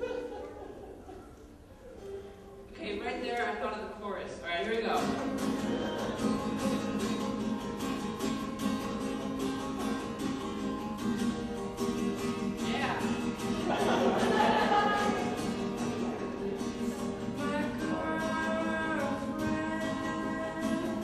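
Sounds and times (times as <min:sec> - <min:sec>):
acoustic guitar strumming: 0:02.0 - 0:21.0.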